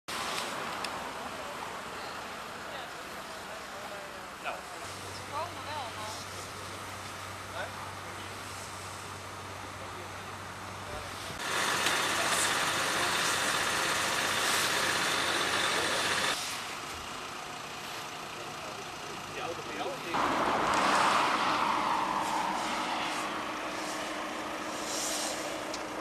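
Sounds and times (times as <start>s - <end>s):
motorway traffic passing: 0.1s - 26.0s
vehicle passing with falling pitch: 20.1s - 26.0s.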